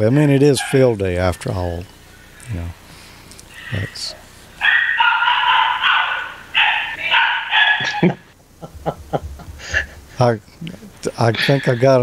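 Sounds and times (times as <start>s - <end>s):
voices: 0.0s - 12.0s
dog howling: 3.5s - 8.0s.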